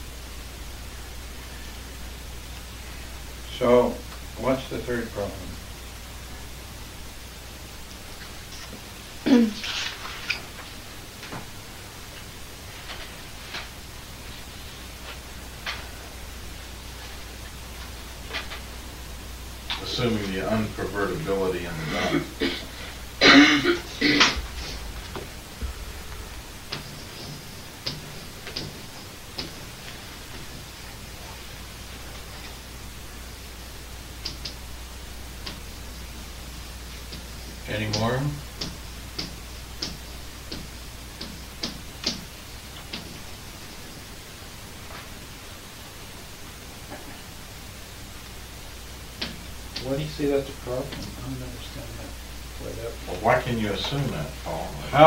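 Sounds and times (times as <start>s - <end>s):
tape hiss: 0.0s - 55.0s
person coughing: 21.8s - 24.4s.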